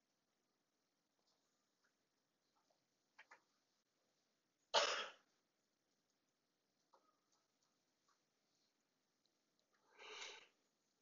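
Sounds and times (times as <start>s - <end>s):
person coughing: 4.8s - 5.2s.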